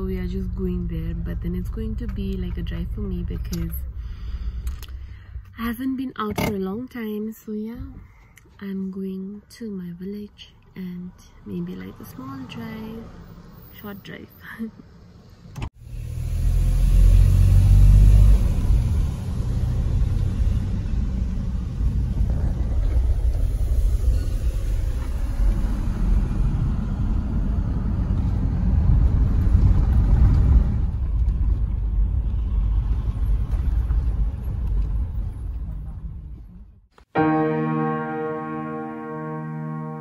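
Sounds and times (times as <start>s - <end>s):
car engine and road rumble: 0.0s - 37.1s.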